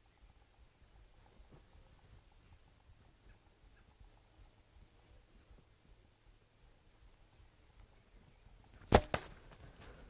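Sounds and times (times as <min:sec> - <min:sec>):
arrow hitting animal: 0:08.8 - 0:09.4.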